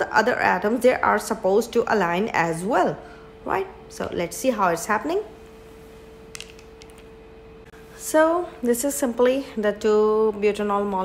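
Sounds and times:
steady faint hum: 0.0 - 11.0.

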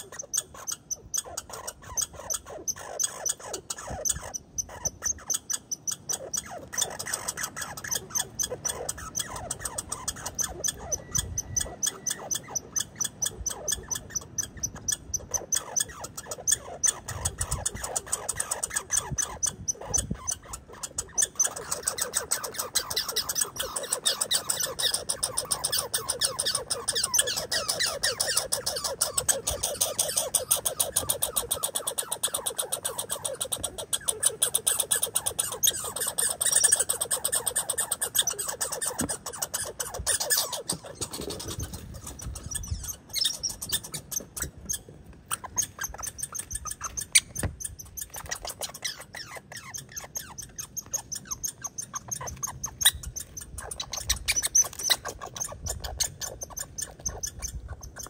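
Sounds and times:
squirrel clicking: 0.1 - 58.0.

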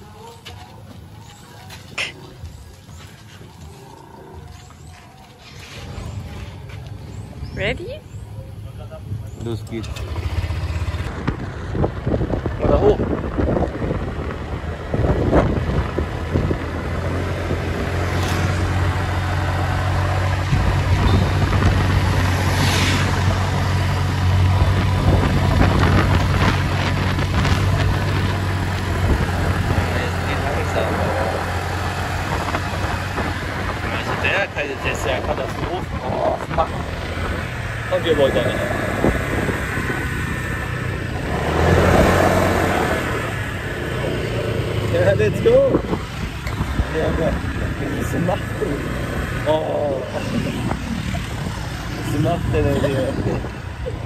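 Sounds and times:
motor scooter engine running: 9.8 - 22.4
wind on microphone: 10.7 - 54.0.

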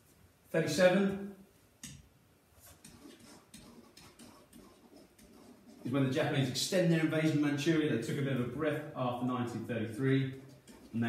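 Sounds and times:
pen tapping and scratching on whiteboard: 2.6 - 5.9, 10.3 - 11.0.

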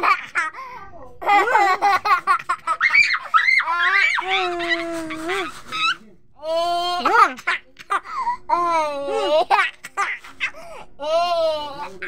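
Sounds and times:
toddler laughing and squealing: 2.7 - 6.0.

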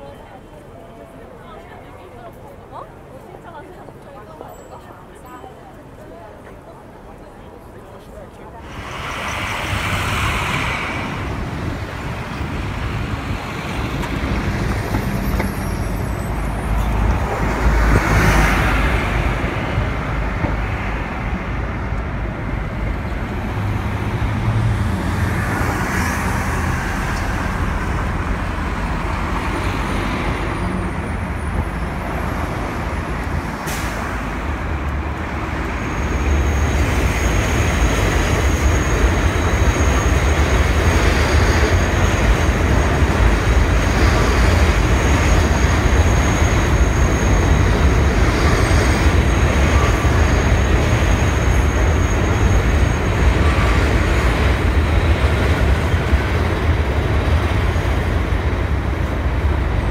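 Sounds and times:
bus and car engines passing: 8.5 - 59.9.

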